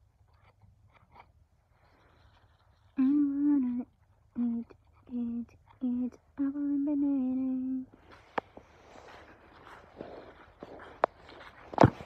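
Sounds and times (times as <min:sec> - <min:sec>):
faint rustling: 0:00.0 - 0:06.4, 0:07.4 - 0:12.0.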